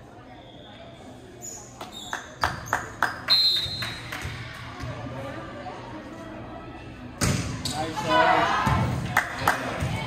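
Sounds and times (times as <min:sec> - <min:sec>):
referee's whistle blown: 0:03.3 - 0:04.0.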